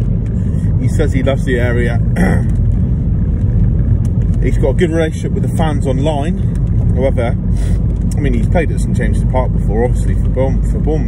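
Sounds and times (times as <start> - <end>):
car engine rumble: 0.0 - 11.0
road noise: 0.0 - 11.0.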